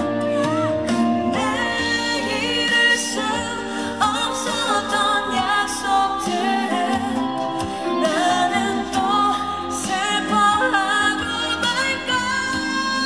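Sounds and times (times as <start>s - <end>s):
woman singing into microphone: 0.0s - 13.0s.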